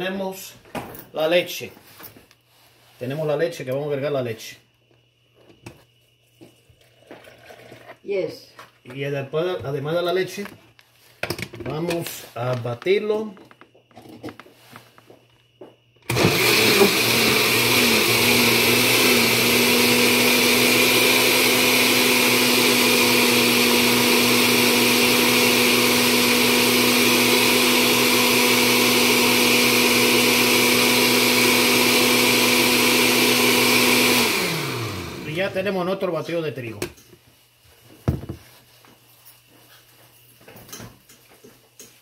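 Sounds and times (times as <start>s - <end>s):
blender motor running: 16.0s - 35.7s.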